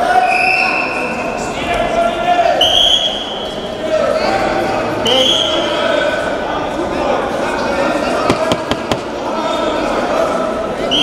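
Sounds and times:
indistinct echoing voices: 0:00.0 - 0:11.0
thuds: 0:08.2 - 0:09.2.

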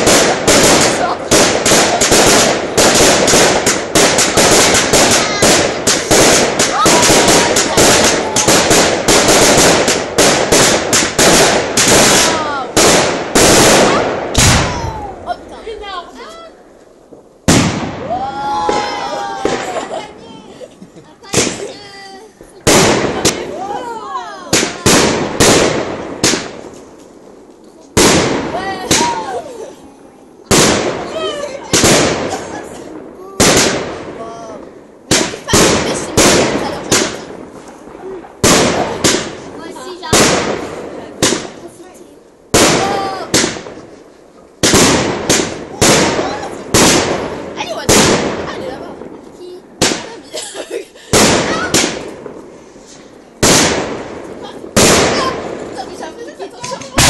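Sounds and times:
fireworks bangs with crackling: 0:00.0 - 0:57.0.

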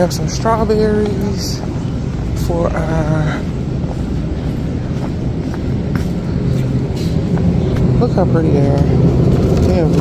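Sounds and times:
low rumble and hum: 0:00.0 - 0:10.0.

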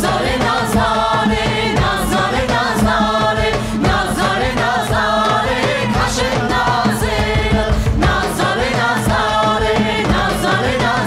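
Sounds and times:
choir and lead singers: 0:00.0 - 0:11.0
steady drum beat: 0:00.0 - 0:11.0.

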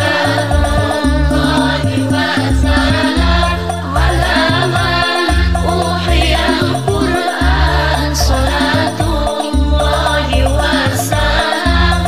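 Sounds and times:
backing track with bass line: 0:00.0 - 0:12.0
woman singing devotional song: 0:00.0 - 0:12.0.

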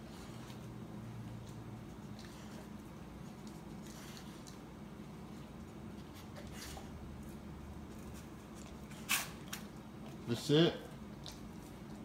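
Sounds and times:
dog licking and mouthing meat: 0:00.1 - 0:12.0.

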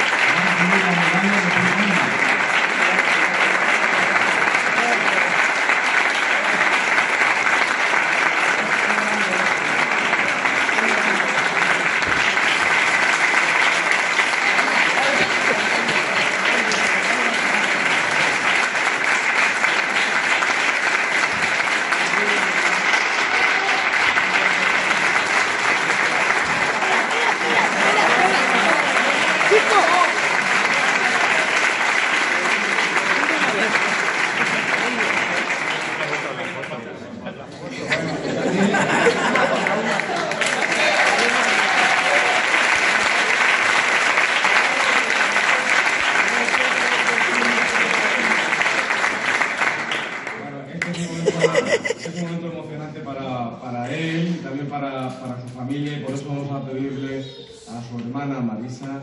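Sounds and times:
audience applause: 0:00.0 - 0:37.1, 0:37.7 - 0:52.2.

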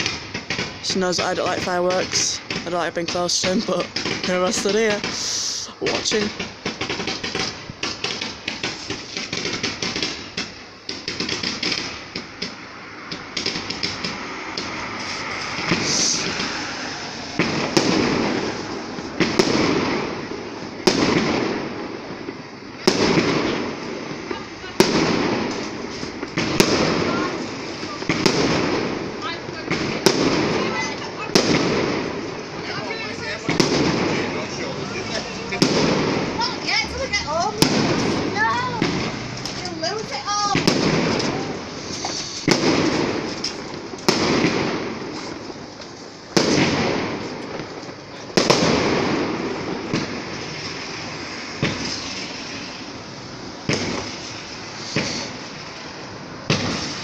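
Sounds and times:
firework whistles: 0:00.0 - 0:00.9, 0:03.4 - 0:57.0
firework shells bursting: 0:00.0 - 0:57.0.

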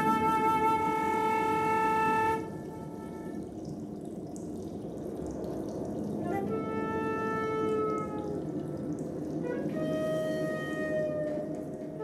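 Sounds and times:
flute high note: 0:00.0 - 0:03.5, 0:06.2 - 0:08.5, 0:09.4 - 0:12.0.

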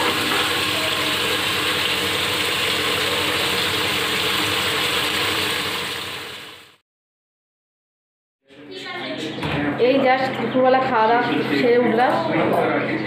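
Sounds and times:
curry sizzling and bubbling in pot: 0:00.0 - 0:06.8.

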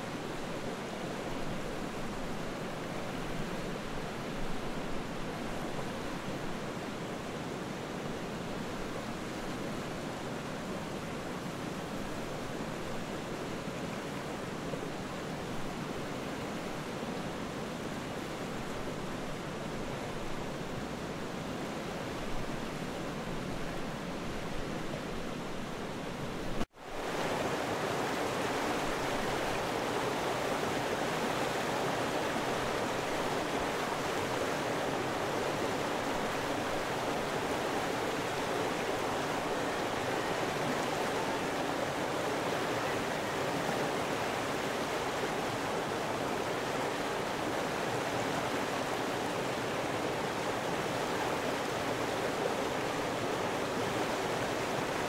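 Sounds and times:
rushing water: 0:00.0 - 0:55.0.

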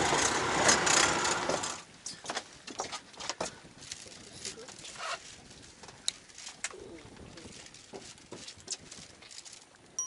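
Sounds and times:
fishing tackle clicking and rustling: 0:02.1 - 0:10.0.

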